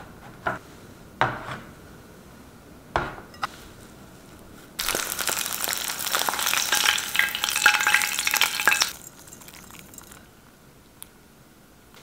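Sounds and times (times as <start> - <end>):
eggs sizzling in oil: 4.8 - 10.3.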